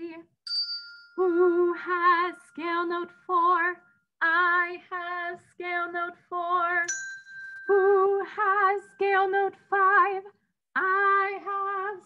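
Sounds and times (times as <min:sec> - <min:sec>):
woman singing unaccompanied: 0:01.2 - 0:06.9, 0:07.7 - 0:12.0.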